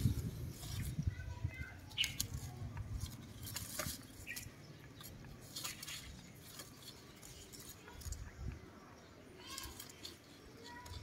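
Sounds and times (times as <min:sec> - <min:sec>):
leaves rustling and crackling: 0:00.0 - 0:11.0.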